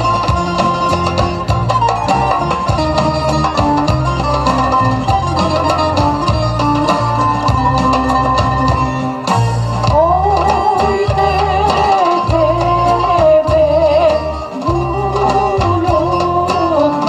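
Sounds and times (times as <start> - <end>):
plucked-string melody: 0.0 - 17.0.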